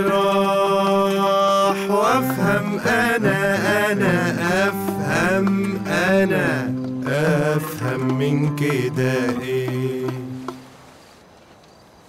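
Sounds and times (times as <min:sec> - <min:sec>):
man singing: 0:00.0 - 0:10.6
oud plucked notes: 0:00.0 - 0:10.8.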